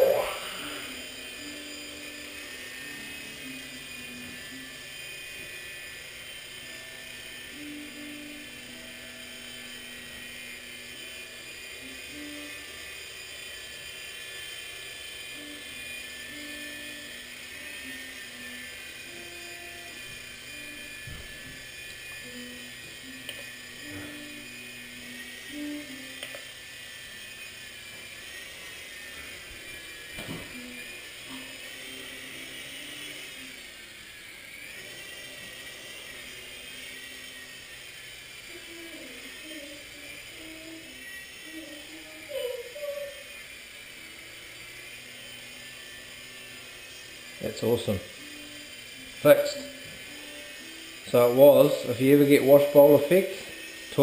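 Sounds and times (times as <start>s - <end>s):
toy helicopter rotors whining: 0.0s - 54.0s.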